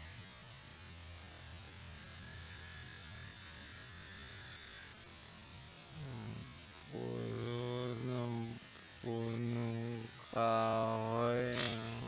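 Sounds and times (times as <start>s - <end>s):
man humming low notes: 5.9s - 12.0s.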